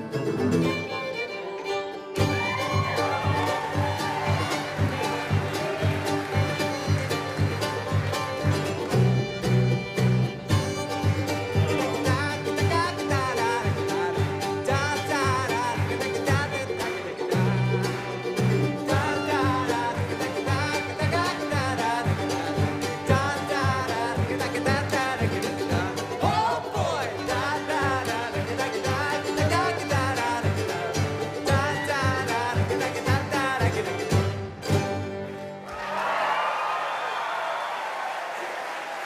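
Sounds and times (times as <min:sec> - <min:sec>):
fiddle with vibrato: 0:00.0 - 0:35.6
rapidly picked strings: 0:00.0 - 0:35.7
bass line: 0:02.2 - 0:34.9.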